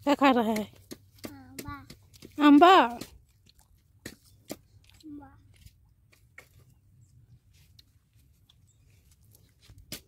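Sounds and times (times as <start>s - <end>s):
child chewing fruit: 0.8s - 10.0s.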